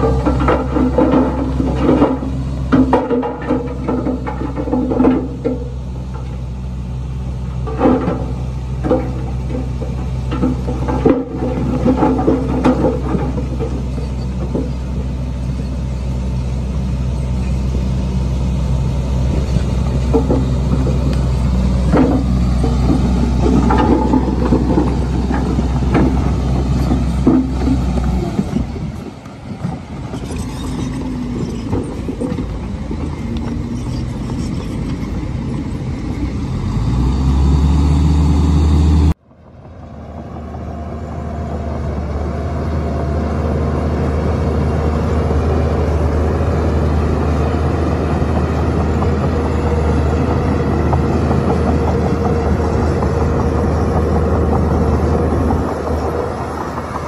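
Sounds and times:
bulldozer diesel engine: 0.0 - 57.0
diesel truck engines running: 0.0 - 57.0
engine revving: 30.0 - 39.2.

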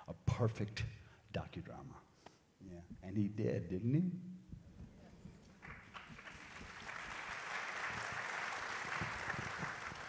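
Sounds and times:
audience applauding: 5.5 - 10.0.

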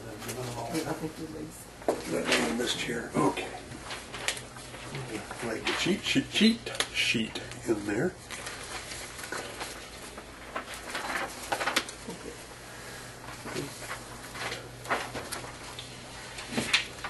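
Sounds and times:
low room hum: 0.0 - 17.0
paper sheets rustling: 2.0 - 17.0.

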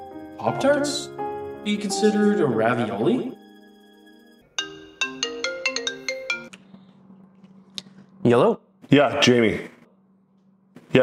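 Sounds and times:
bell-like phone ringtone: 1.6 - 6.5.

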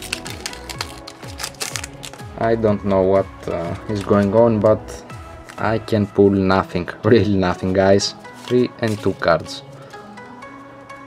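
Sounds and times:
foil wrapper crinkling: 0.0 - 2.3, 8.2 - 9.3
background music: 0.0 - 11.0.

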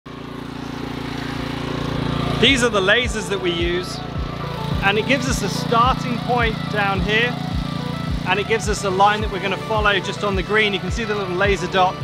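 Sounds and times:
small engine running: 0.1 - 12.0.

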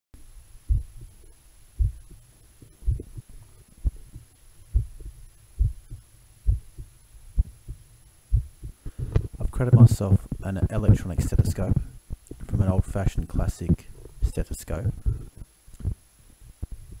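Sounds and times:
heartbeat through stethoscope: 0.7 - 1.2, 1.8 - 10.4, 15.0 - 16.0, 16.6 - 17.0.

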